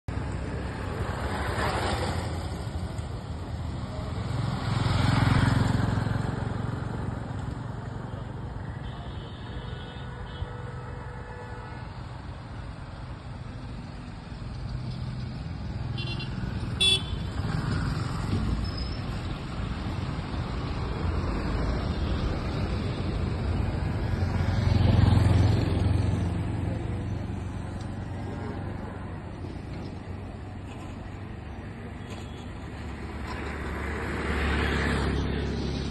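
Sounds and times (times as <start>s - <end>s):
vehicles passing on road: 0.1s - 35.9s
vehicle passing by: 3.6s - 8.4s, 19.4s - 29.3s, 32.7s - 35.9s.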